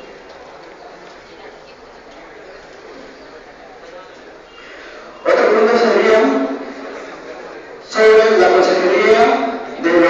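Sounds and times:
echoing murmur of voices: 0.0 - 10.0
speech: 5.2 - 10.0.

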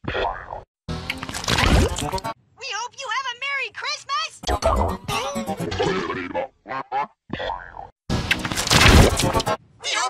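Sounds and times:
music: 0.9 - 2.4, 4.5 - 5.7, 8.1 - 9.6
distorted cartoon sound effects: 4.5 - 6.5.

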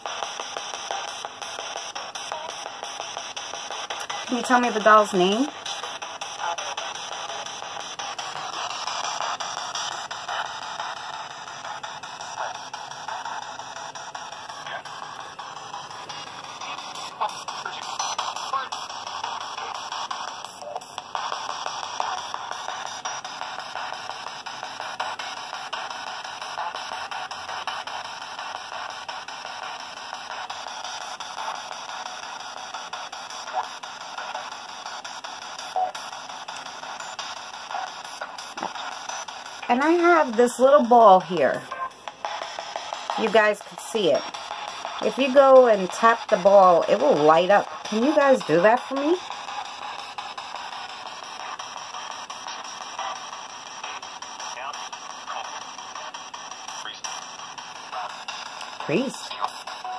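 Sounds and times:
clipped broadcast voices: 3.6 - 13.6, 14.2 - 21.3, 33.5 - 49.4, 53.8 - 59.9
radio static: 3.9 - 21.3, 37.6 - 42.4, 43.0 - 51.6, 52.5 - 59.9.

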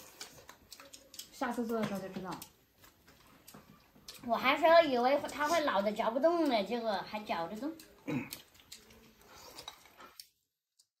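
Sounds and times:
chopsticks clicking against bowls: 0.1 - 4.3, 5.2 - 10.3.

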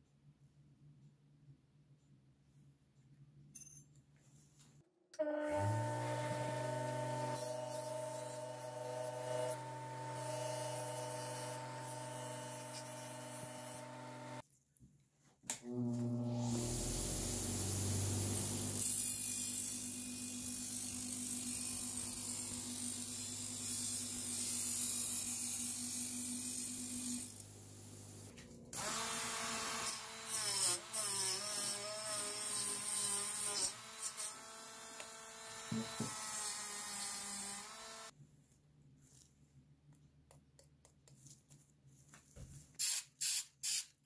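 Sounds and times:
bench grinder motor hum: 5.4 - 14.4, 15.7 - 19.4, 20.5 - 38.1.

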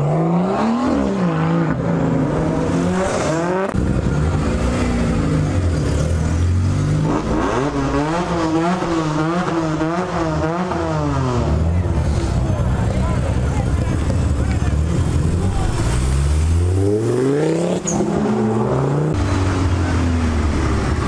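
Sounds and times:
car engine revving: 0.0 - 21.0.

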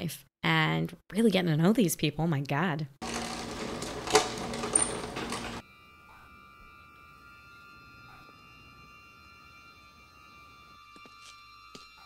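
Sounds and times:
hum of held tones: 4.6 - 12.0.

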